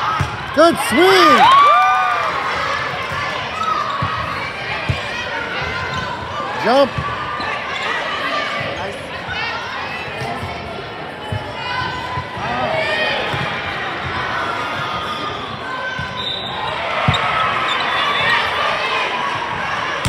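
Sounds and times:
hubbub of voices: 0.0s - 20.0s
shoes squeaking on court floor: 16.0s - 18.6s.

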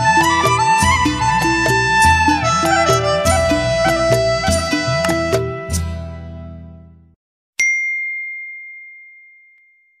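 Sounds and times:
bright bell ding: 7.6s - 10.0s.

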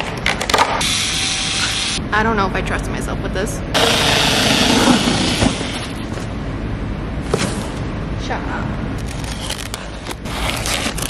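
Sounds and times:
electric cutter slicing cardboard: 0.8s - 2.0s, 3.8s - 6.1s.

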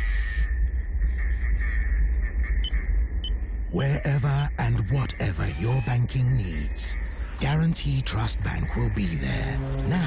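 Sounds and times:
deep low rumble: 0.0s - 5.6s, 6.6s - 10.0s
faint high hum: 0.0s - 10.0s.

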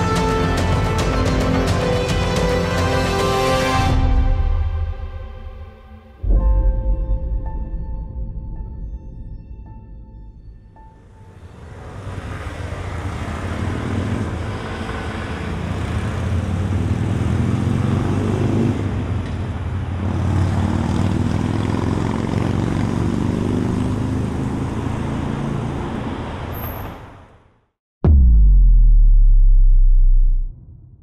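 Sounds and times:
road traffic noise: 0.0s - 4.0s, 11.0s - 27.7s
vehicle engines passing: 11.3s - 27.4s.

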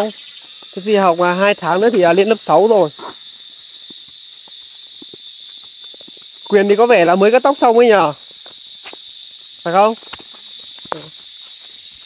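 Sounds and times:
insects buzzing: 0.0s - 12.0s
footsteps on dry leaves: 0.1s - 0.8s, 8.2s - 12.0s.

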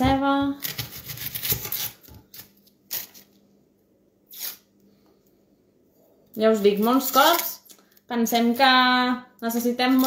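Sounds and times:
knife cutting onion: 0.0s - 3.2s
onion skin rustling: 0.6s - 3.4s, 4.3s - 4.7s, 6.6s - 8.0s.

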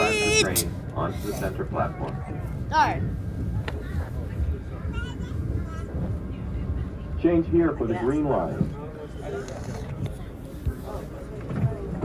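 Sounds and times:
subway car rumbling: 0.0s - 12.0s.

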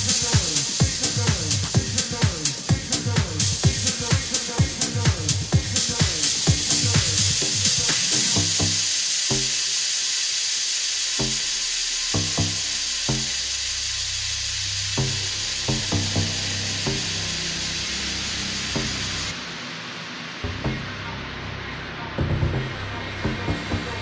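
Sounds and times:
kick drum: 0.0s - 7.7s, 13.1s - 13.4s, 22.2s - 23.9s
electronic dance music: 0.0s - 24.0s
white-noise hiss: 0.0s - 24.0s
low bass note: 11.2s - 19.3s.

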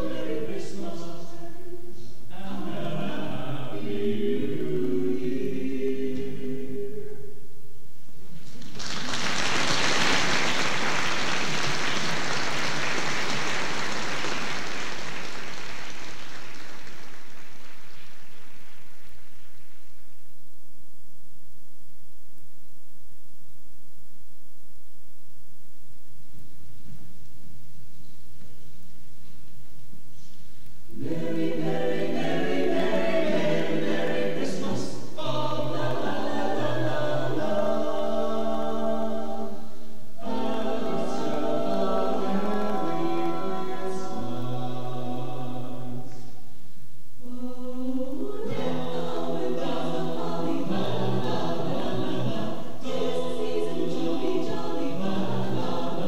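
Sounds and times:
choir singing in parts: 0.0s - 7.4s, 30.9s - 46.6s, 47.2s - 56.0s
audience applauding: 8.4s - 19.8s
person singing: 40.2s - 46.2s, 47.2s - 56.0s.

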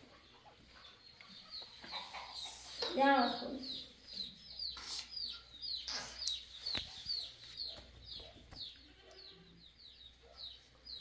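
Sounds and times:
bird chirping: 0.0s - 11.0s.

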